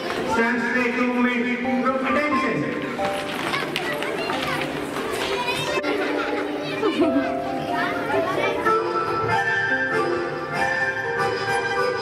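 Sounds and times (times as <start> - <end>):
children chattering: 0.0 - 0.6, 2.7 - 12.0
background music: 0.0 - 12.0.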